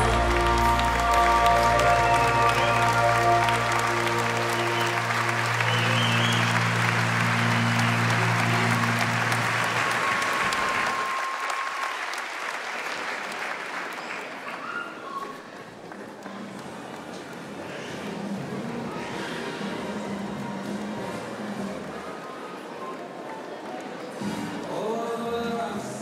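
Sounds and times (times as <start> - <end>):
crowd applauding: 0.0 - 18.9.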